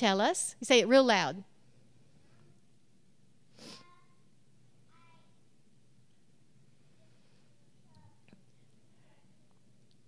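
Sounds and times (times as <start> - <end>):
distant child's voice: 3.8 - 4.2, 4.9 - 5.4.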